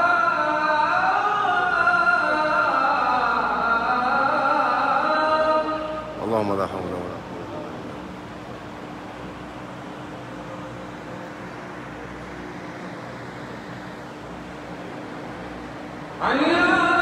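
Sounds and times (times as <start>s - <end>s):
electric fans whirring: 0.0s - 17.0s
faint constant hum: 0.0s - 17.0s.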